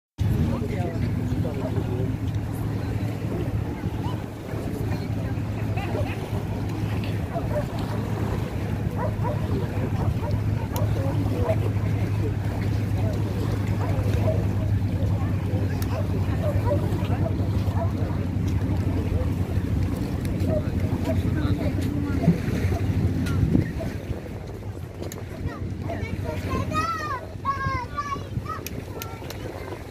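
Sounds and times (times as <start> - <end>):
faint voices: 0.2 - 29.9
wind on microphone: 0.2 - 29.9.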